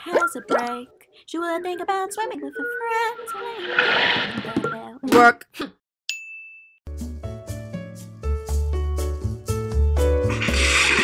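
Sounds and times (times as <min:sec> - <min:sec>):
high ding: 0:06.1 - 0:06.8.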